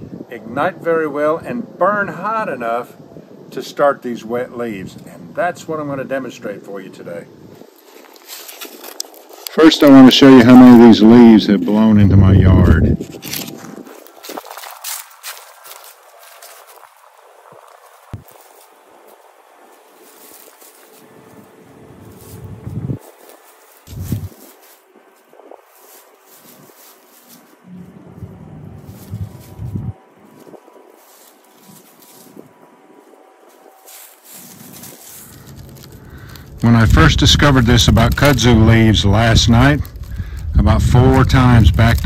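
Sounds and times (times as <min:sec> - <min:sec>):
footsteps through dry leaves: 0:07.6 - 0:09.6, 0:12.9 - 0:42.0.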